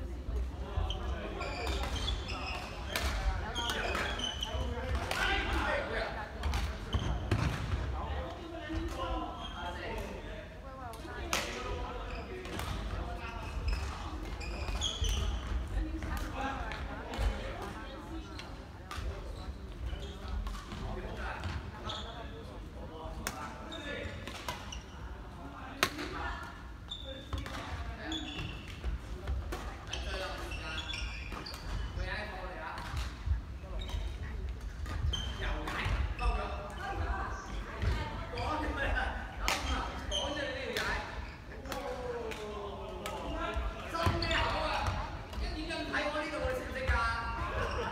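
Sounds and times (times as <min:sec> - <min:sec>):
people's voices chattering: 0:00.0 - 0:24.2, 0:24.9 - 0:47.9.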